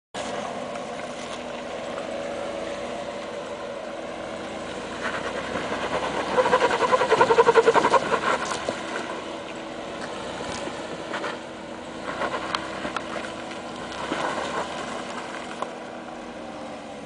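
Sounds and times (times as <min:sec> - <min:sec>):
car engine running: 0:00.2 - 0:17.0.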